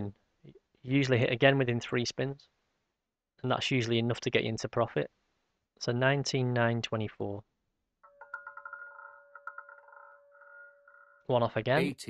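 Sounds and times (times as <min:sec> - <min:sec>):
roulette ball rattling ticks: 0:08.1 - 0:11.1
roulette wheel ringing hum: 0:08.1 - 0:11.3.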